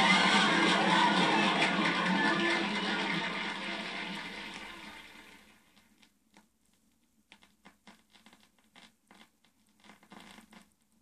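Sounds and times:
vinyl record crackle: 0.0s - 10.9s.

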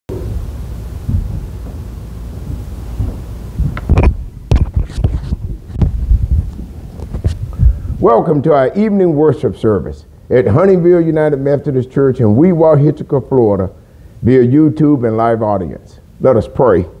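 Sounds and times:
microphone rumble: 0.1s - 8.4s
thumps and knocks on wood: 1.0s - 6.0s.

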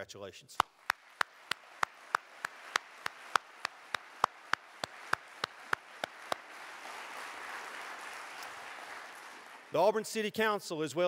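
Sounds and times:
person clapping hands: 0.6s - 9.7s.

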